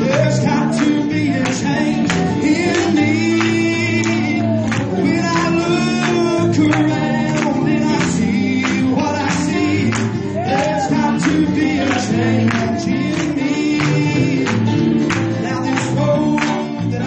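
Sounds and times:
gospel singing with band: 0.0 - 17.0.

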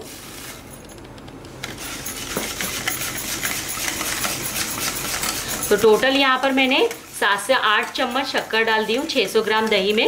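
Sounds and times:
whisk clinking against glass bowl: 1.8 - 10.0.

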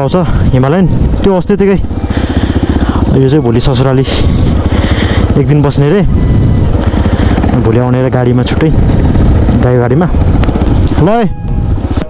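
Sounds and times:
motorcycle engine running: 0.0 - 12.0
wind rumbling on microphone: 0.0 - 12.0.

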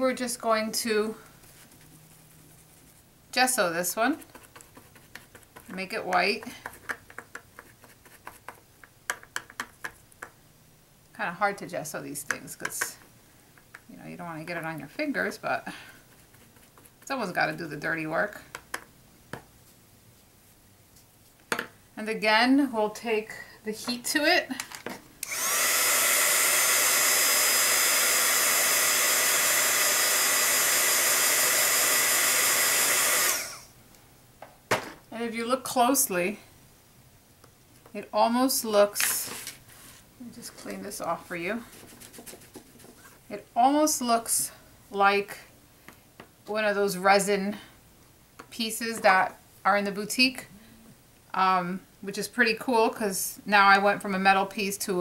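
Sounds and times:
heat gun whirring and hissing: 25.2 - 33.8.

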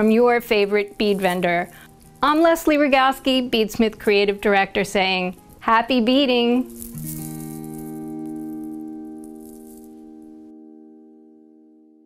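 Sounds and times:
shaker-like rattle: 0.0 - 10.1.

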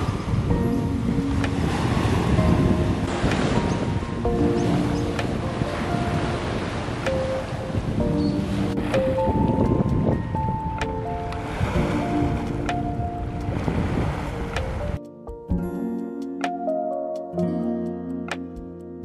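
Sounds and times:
small waves breaking on shore: 0.0 - 15.0
background music: 0.0 - 19.0.

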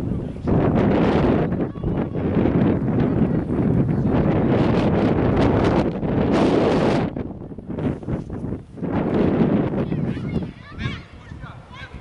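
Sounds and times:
wind gusting on microphone: 0.0 - 12.0.

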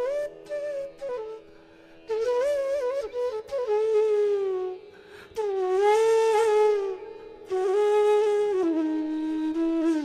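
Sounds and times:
bamboo flute playing: 0.0 - 10.0.

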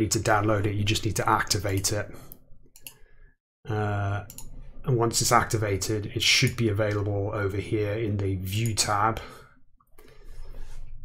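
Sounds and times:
computer mouse click: 2.7 - 3.0, 4.3 - 4.6.

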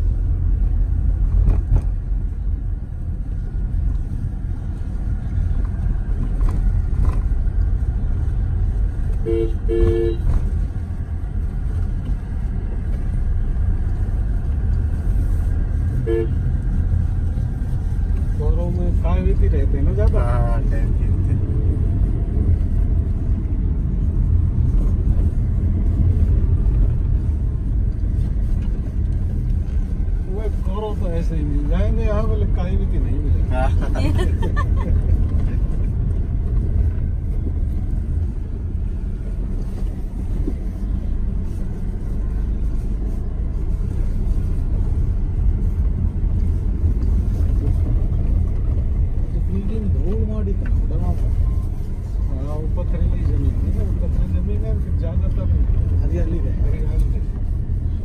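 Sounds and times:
car road and engine rumble: 0.0 - 58.0
car horn toots: 9.2 - 10.4, 16.0 - 16.4.

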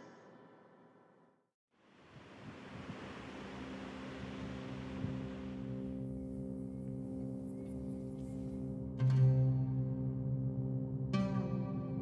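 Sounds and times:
sea surf rushing: 2.0 - 6.0.

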